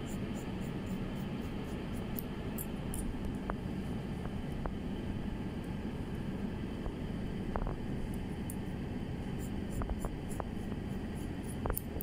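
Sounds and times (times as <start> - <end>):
low room hum: 0.0 - 12.0
shears snipping wet hair: 9.3 - 12.0.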